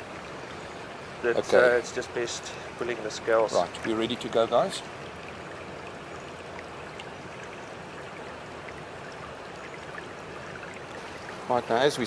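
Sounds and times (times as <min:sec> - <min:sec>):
running water trickling: 0:00.0 - 0:12.0.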